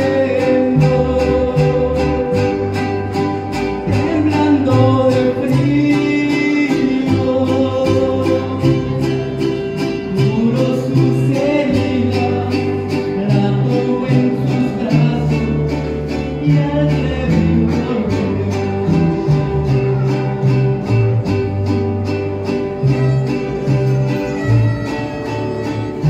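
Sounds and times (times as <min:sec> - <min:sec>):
people singing along: 0:00.0 - 0:02.8
acoustic guitars strumming: 0:00.0 - 0:26.0
bass guitar: 0:00.0 - 0:26.0.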